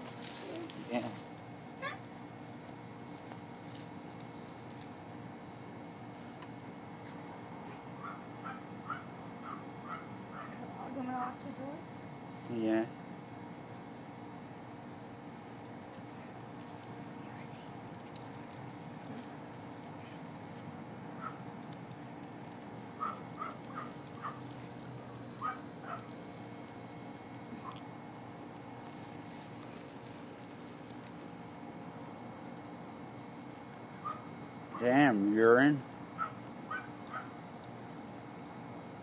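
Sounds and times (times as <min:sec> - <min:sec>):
steady background hum: 0:00.0 - 0:39.0
urine stream splashing: 0:21.6 - 0:34.8, 0:35.9 - 0:39.0.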